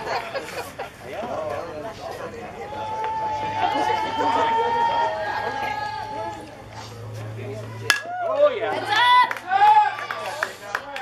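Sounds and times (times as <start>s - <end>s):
spectators yelling and cheering: 0.0s - 11.0s.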